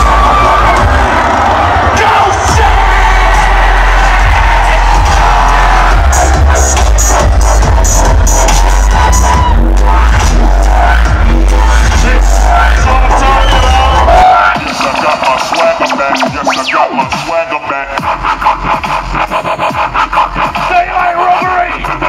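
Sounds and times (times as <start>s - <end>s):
dubstep music over sound system: 0.0s - 22.0s.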